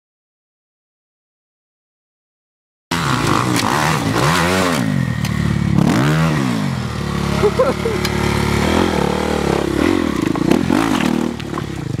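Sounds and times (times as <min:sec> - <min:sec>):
dirt bike engine revving: 0:02.9 - 0:12.0.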